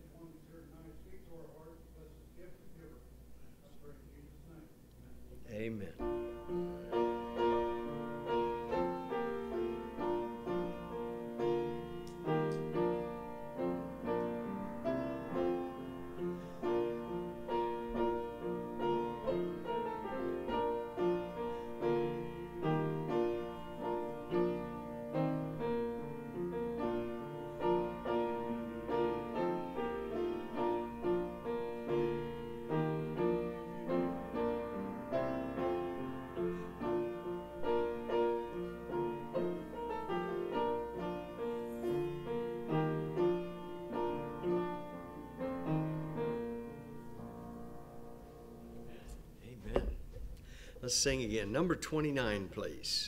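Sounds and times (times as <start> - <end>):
slow solo piano piece: 6.0 - 50.8.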